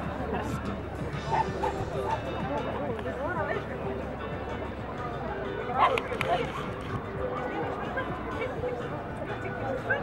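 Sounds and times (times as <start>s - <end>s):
background music: 0.0s - 10.0s
crowd chatter: 0.0s - 10.0s.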